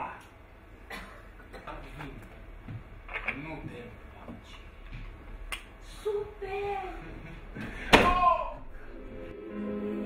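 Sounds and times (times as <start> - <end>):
hatch slamming shut: 7.9 - 8.3.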